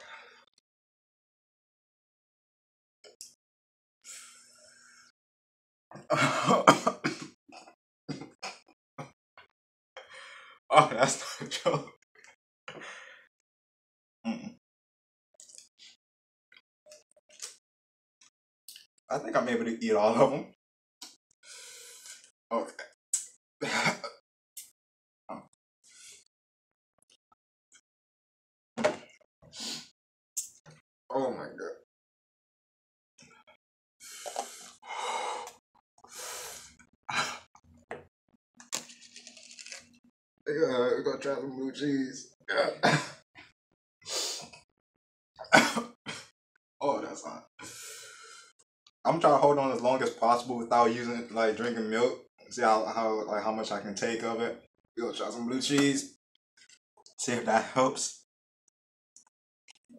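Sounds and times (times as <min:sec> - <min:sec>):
man gasping breaths: 0:34.0 - 0:35.5
man breathing hard through mouth: 0:34.0 - 0:37.4.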